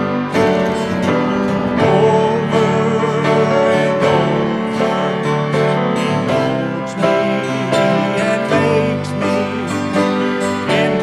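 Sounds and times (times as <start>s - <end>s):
acoustic guitar: 0.0s - 11.0s
piano: 0.0s - 11.0s.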